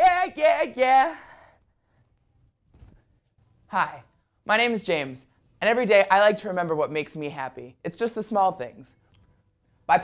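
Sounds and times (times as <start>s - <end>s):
excited shout: 0.0s - 1.3s.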